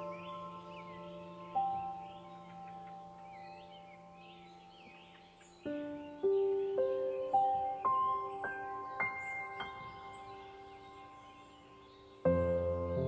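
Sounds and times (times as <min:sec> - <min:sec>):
ambient chime-like music: 0:00.0 - 0:13.0
birds chirping: 0:00.0 - 0:13.0.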